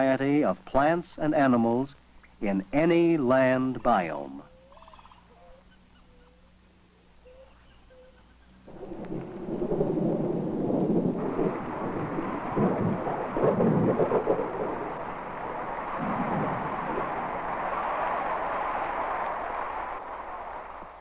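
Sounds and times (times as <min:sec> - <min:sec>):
low hum: 0:00.0 - 0:21.0
faint short calls: 0:04.4 - 0:08.7
heavy rain: 0:08.6 - 0:21.0
rumbling thunder: 0:08.7 - 0:21.0.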